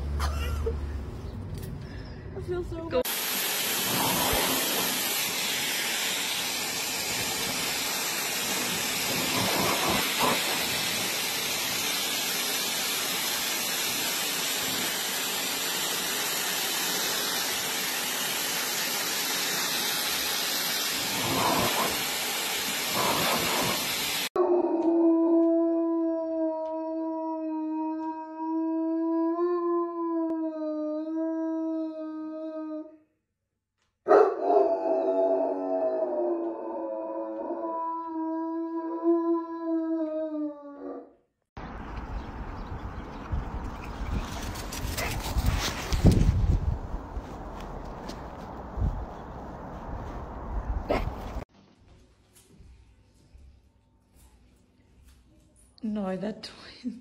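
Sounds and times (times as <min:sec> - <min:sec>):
hair dryer blowing: 0:03.1 - 0:24.4
dog howling: 0:24.4 - 0:33.0, 0:34.1 - 0:41.1.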